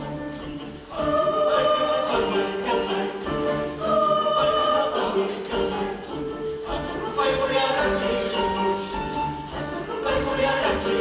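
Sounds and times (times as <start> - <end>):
youth choir singing: 0.0 - 11.0.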